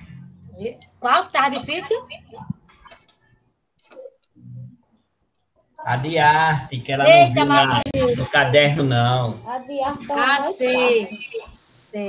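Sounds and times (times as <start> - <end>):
person speaking: 9.4 - 11.6.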